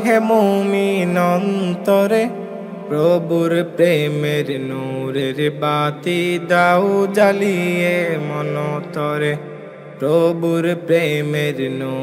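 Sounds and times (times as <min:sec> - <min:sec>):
person singing: 0:00.0 - 0:09.4.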